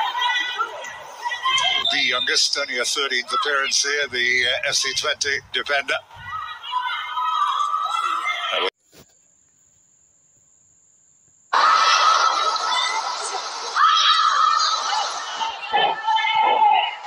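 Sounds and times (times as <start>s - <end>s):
high-pitched shouts: 0.0s - 5.0s, 6.0s - 8.7s, 11.6s - 17.0s
voices on a football field: 0.0s - 8.7s, 11.5s - 17.0s.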